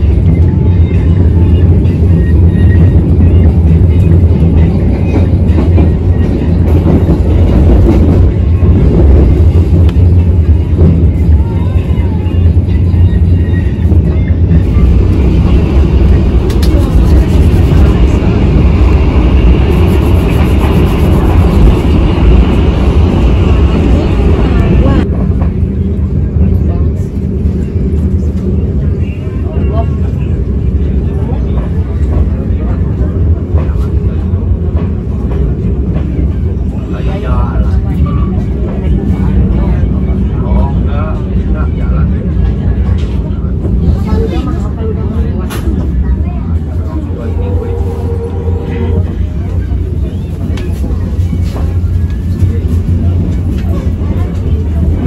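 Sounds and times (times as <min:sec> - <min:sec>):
faint voices: 0:00.0 - 0:55.0
train wheels rumbling on rails: 0:00.0 - 0:55.0.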